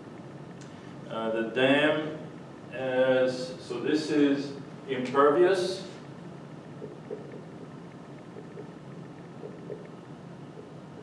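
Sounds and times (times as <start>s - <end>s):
steady room hum: 0.0s - 11.0s.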